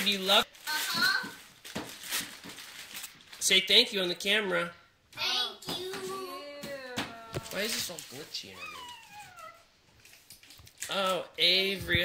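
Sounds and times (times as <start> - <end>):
wrapping paper tearing: 0.0 - 3.5, 7.4 - 11.2.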